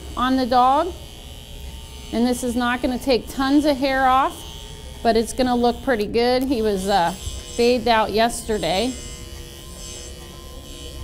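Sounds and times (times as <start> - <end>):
electric pet clipper buzzing: 0.0 - 11.0.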